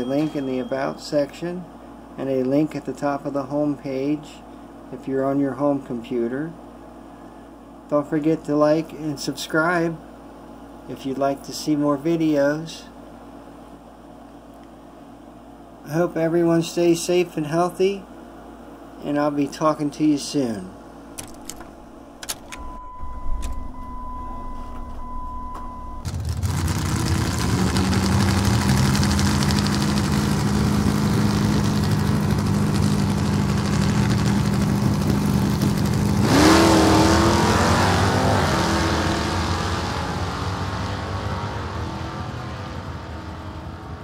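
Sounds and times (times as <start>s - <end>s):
steady high tone: 0.0s - 1.6s, 22.5s - 26.1s
clicks: 21.2s - 23.9s
car engine idling and revving: 22.5s - 44.0s.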